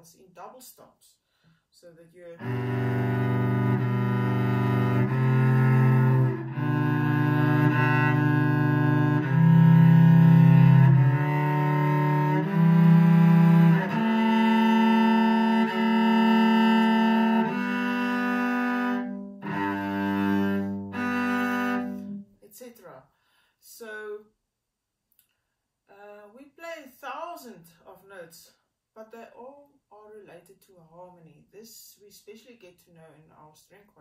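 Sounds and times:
cello bowed chords: 0:02.4 - 0:22.2.

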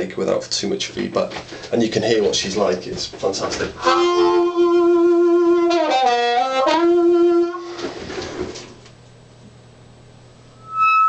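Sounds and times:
faint amp hum: 0:00.0 - 0:11.0
amplified blues harmonica note: 0:03.8 - 0:07.9, 0:10.6 - 0:11.0
high feedback squeal: 0:10.5 - 0:11.0.

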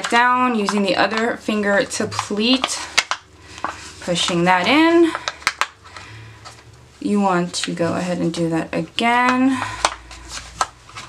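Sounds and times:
faint paper rustling: 0:00.0 - 0:08.4, 0:09.1 - 0:11.0
paper crackling: 0:00.0 - 0:08.4, 0:09.0 - 0:11.0
paper crinkles: 0:09.5 - 0:11.0.

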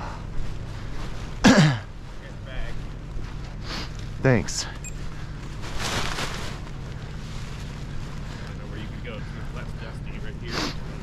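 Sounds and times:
nylon wing rustling: 0:00.0 - 0:11.0
faint voices: 0:06.7 - 0:11.0.

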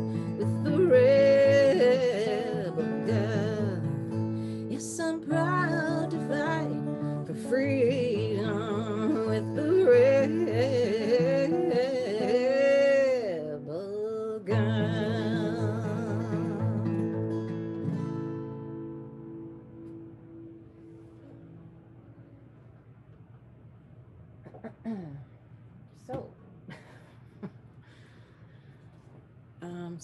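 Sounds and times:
woman singing: 0:00.0 - 0:17.1
acoustic guitar: 0:00.0 - 0:25.4.

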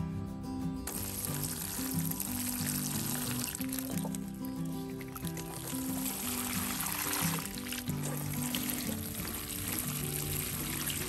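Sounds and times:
background music: 0:00.0 - 0:11.0
water pouring onto soil: 0:00.8 - 0:11.0.

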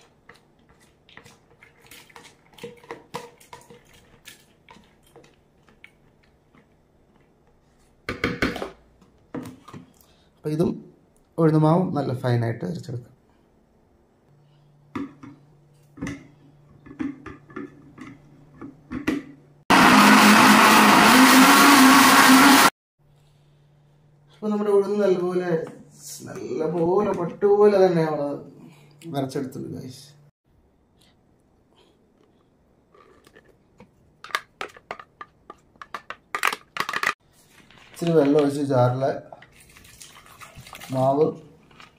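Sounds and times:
blender motor running: 0:19.7 - 0:22.7.

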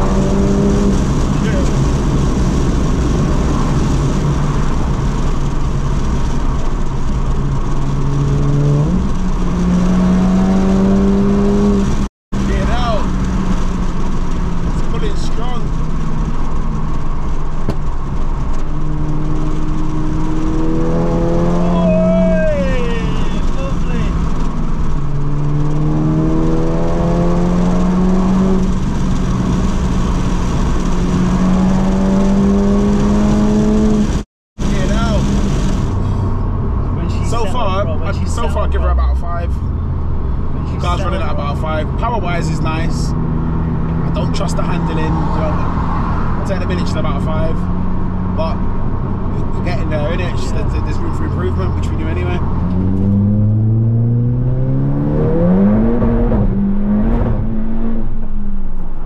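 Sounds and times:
car engine accelerating hard: 0:00.0 - 0:59.0
road noise: 0:00.0 - 0:59.0.

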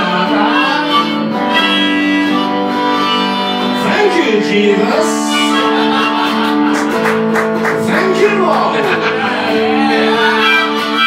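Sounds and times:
electric guitar accompaniment: 0:00.0 - 0:11.0
harmonica playing held notes: 0:00.0 - 0:11.0.

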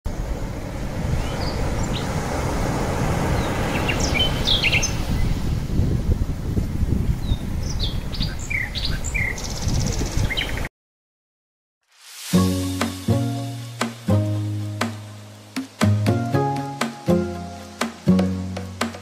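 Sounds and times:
birds chirping: 0:03.3 - 0:05.4, 0:07.2 - 0:10.7.

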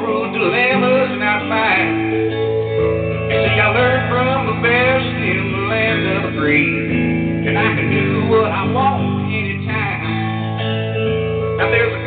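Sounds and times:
man singing: 0:00.0 - 0:02.4, 0:03.3 - 0:10.4, 0:11.6 - 0:12.0
electric guitar chords: 0:00.0 - 0:12.0.

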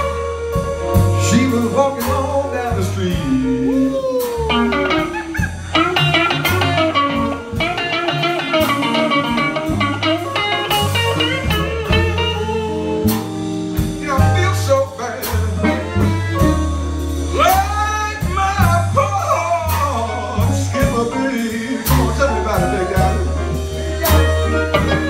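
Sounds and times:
blues band playing: 0:00.0 - 0:25.0
harmonica: 0:04.5 - 0:13.2, 0:15.5 - 0:17.9, 0:21.4 - 0:25.0.

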